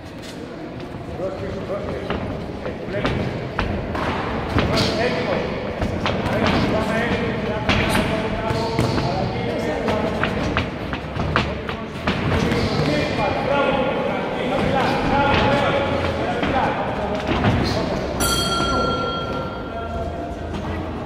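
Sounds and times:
footwork on ring canvas: 0:00.0 - 0:21.0.

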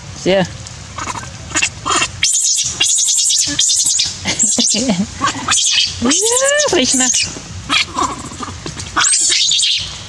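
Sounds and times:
young monkeys squeaking: 0:01.0 - 0:10.0.

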